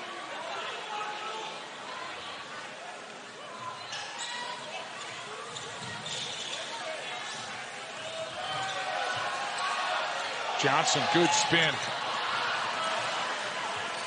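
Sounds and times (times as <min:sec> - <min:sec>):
arena crowd noise: 0:00.0 - 0:14.0.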